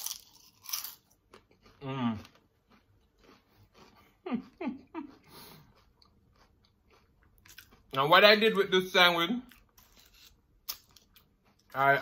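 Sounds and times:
chewing and crunching chips: 0:00.0 - 0:12.0.

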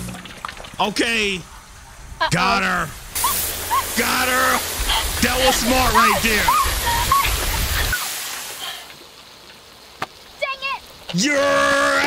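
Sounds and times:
water blaster spraying: 0:03.2 - 0:08.8.

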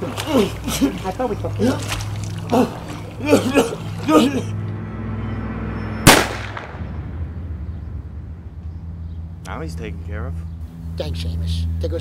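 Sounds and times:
handgun shot: 0:06.1 - 0:06.8.

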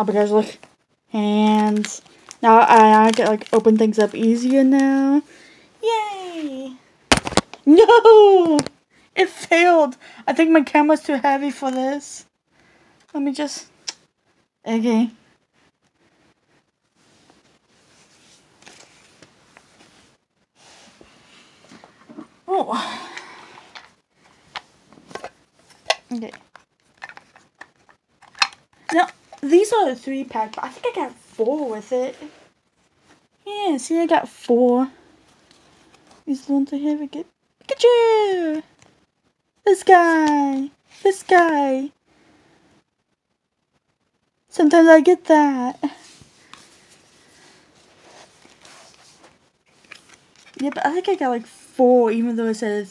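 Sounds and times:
soft rustling: 0:15.2 - 0:22.5, 0:23.2 - 0:33.4, 0:45.8 - 0:51.0.

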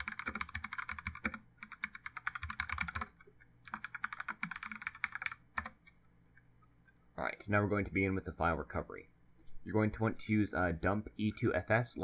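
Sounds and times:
computer keyboard typing: 0:00.0 - 0:06.0.

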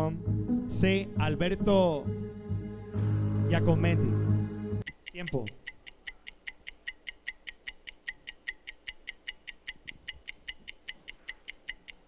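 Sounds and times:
countdown timer ticking: 0:00.2 - 0:12.0.

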